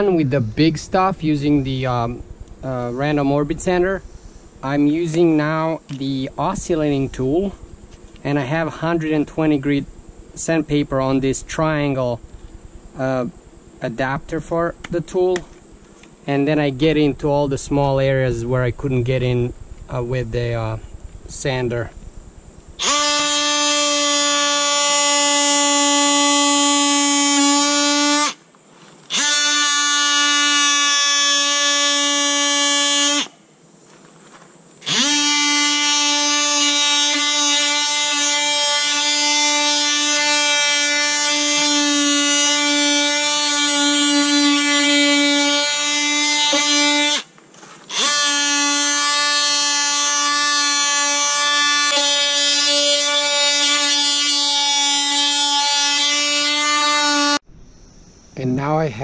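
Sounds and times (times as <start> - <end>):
oscillating multi-tool buzzing: 0.0 - 15.9, 16.8 - 28.4, 29.1 - 33.4, 34.8 - 58.0.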